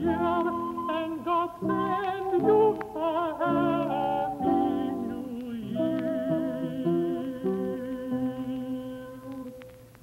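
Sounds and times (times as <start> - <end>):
choir singing with vibrato: 0.0 - 9.5.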